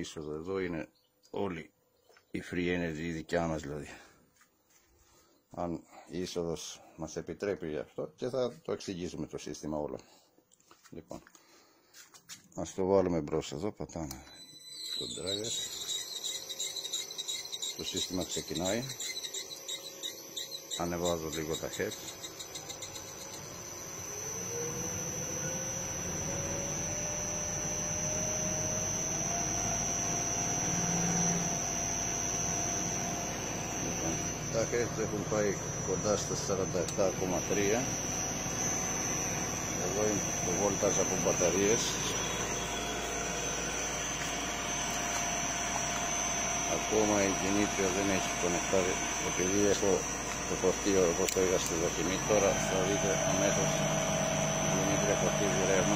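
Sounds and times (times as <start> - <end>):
high-pitched drive whine: 13.2 - 55.9
low motor hum: 14.9 - 55.9.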